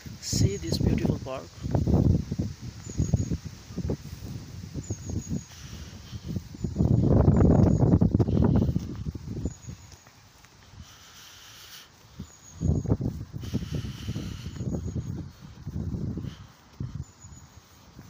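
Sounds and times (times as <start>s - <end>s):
high bird chirps: 4.8s - 8.6s, 11.1s - 15.2s
microphone rumbling: 5.6s - 9.5s
soft footsteps: 6.8s - 13.4s.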